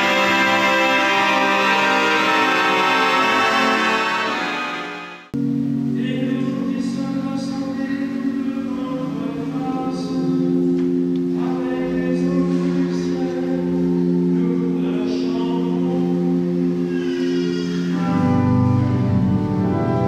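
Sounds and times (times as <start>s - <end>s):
choir singing: 0.0s - 5.4s
sustained organ chords: 0.0s - 20.0s.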